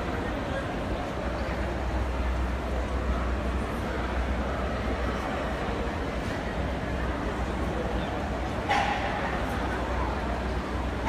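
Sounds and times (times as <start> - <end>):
hubbub of voices: 0.0 - 11.0.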